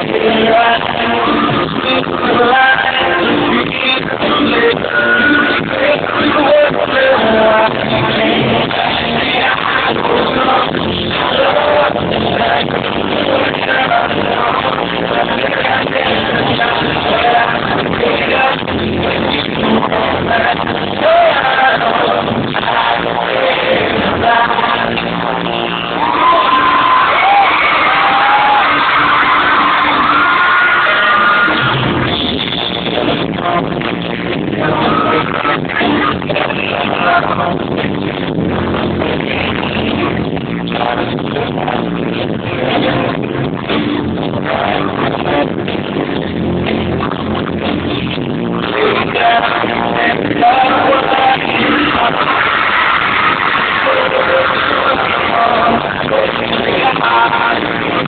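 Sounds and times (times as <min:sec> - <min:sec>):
crowd noise: 0:00.0 - 0:58.0
muffled live pop music: 0:00.0 - 0:58.0.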